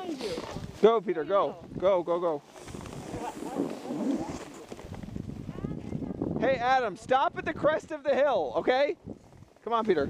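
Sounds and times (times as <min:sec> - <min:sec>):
skis scraping over packed snow: 0:02.4 - 0:05.2.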